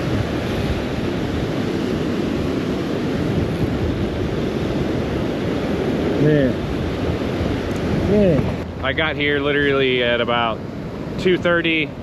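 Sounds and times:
rough surf breaking: 0:00.0 - 0:12.0
wind buffeting microphone: 0:00.0 - 0:12.0.

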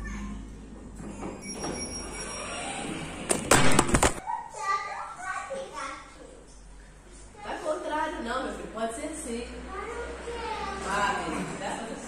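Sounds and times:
children's voices: 0:00.0 - 0:00.6, 0:04.2 - 0:07.8, 0:09.6 - 0:11.5.

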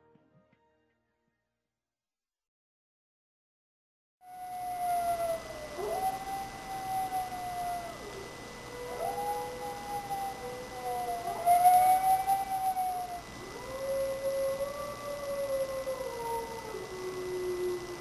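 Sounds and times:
wolves howling: 0:04.2 - 0:18.0.

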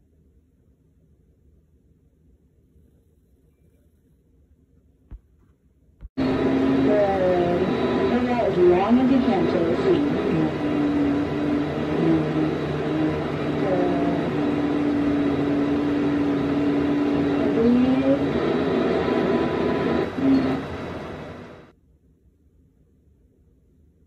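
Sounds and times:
steady background hum: 0:00.0 - 0:24.0.

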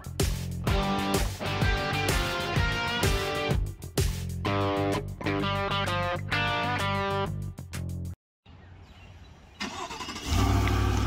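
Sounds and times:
vehicle engine rumbling: 0:09.6 - 0:11.0.

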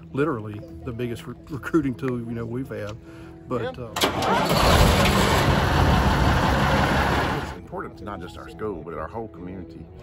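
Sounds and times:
fire truck engine rumbling: 0:04.0 - 0:07.6.

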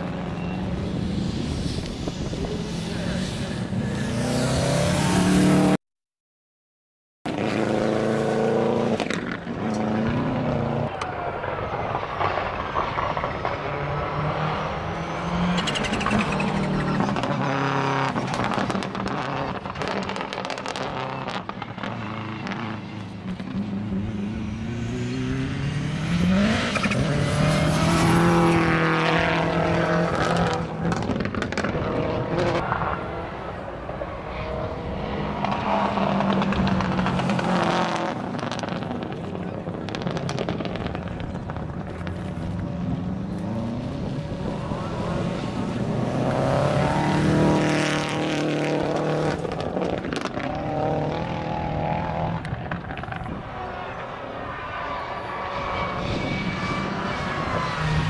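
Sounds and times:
rally car engines revving: 0:00.0 - 0:05.8, 0:07.3 - 0:58.0.

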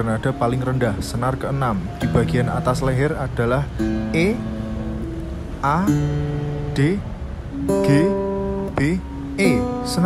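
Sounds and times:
acoustic guitar string plucked: 0:02.0 - 0:10.0.

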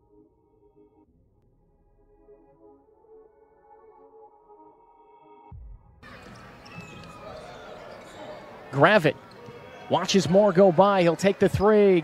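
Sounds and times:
crowd murmur: 0:06.0 - 0:12.0.

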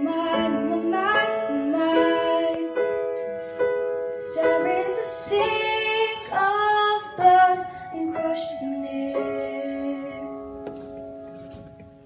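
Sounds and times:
girl singing into a microphone: 0:00.0 - 0:03.2, 0:04.2 - 0:10.8
grand piano: 0:00.0 - 0:12.0.

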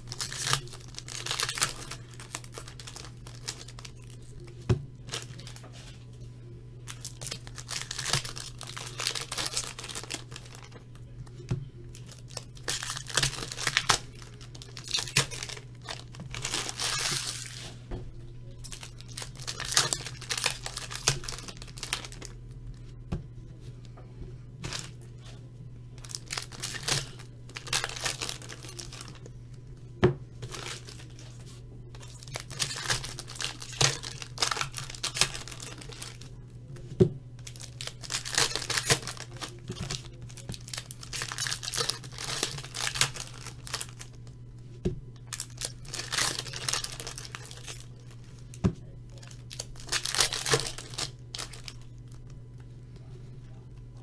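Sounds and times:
foil wrappers tearing and crinkling: 0:00.0 - 0:06.0, 0:06.9 - 0:11.0, 0:11.9 - 0:17.8, 0:18.6 - 0:22.5, 0:24.6 - 0:25.0, 0:26.0 - 0:29.3, 0:30.4 - 0:36.4, 0:37.4 - 0:44.4, 0:45.3 - 0:52.2
low steady hum: 0:00.0 - 0:54.0.

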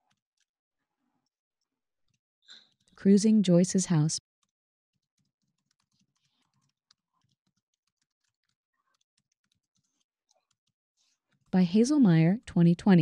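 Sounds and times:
computer keyboard clicking: 0:04.4 - 0:10.8.

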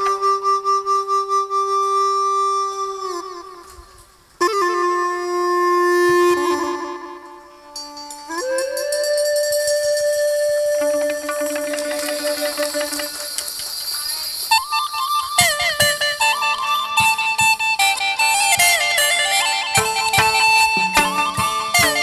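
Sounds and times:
wind instrument long notes: 0:00.0 - 0:13.5, 0:14.5 - 0:22.0
percussion strikes: 0:07.7 - 0:16.4, 0:17.0 - 0:22.0
ornamented melody: 0:14.8 - 0:22.0.

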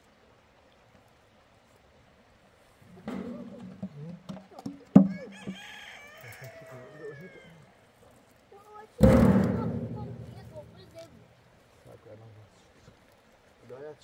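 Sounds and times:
hollow metal boom ringing: 0:09.0 - 0:11.3
sharp knock: 0:09.0 - 0:11.3.

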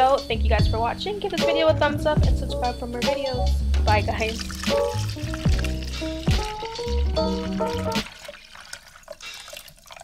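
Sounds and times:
background music: 0:00.0 - 0:10.0
water dripping: 0:04.2 - 0:10.0.

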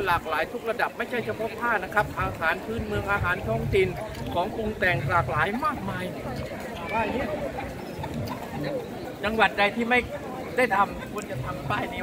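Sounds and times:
people talking in street: 0:00.0 - 0:12.0
man speaking: 0:09.2 - 0:12.0.

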